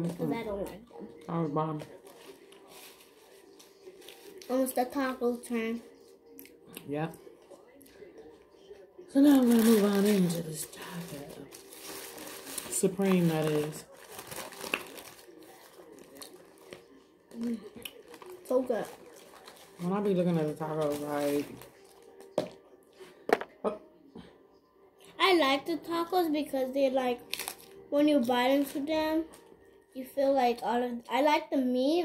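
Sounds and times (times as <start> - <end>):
paper wrapper crinkling: 1.8 - 4.6, 9.2 - 22.4, 27.2 - 27.8.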